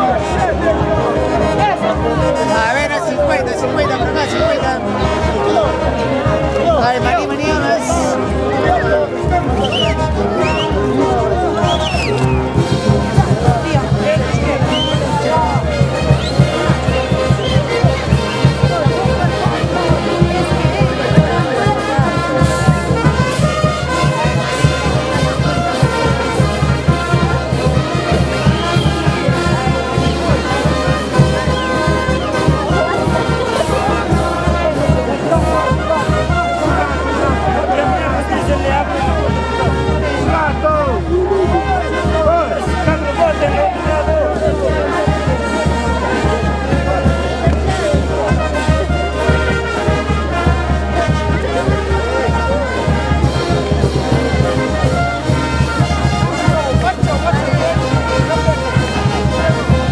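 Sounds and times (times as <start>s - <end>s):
bass horn: 0.0s - 59.9s
brass band playing: 0.0s - 59.9s
steady drumbeat: 0.0s - 59.9s.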